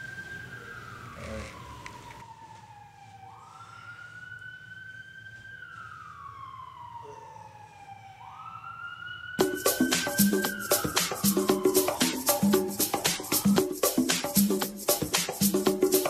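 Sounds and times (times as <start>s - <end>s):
siren wailing: 0.0s - 16.0s
beat with percussive hits: 9.4s - 16.0s.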